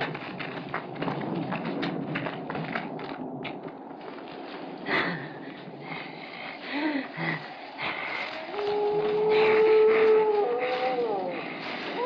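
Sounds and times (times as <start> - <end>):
twigs crackling and snapping: 7.8 - 12.0.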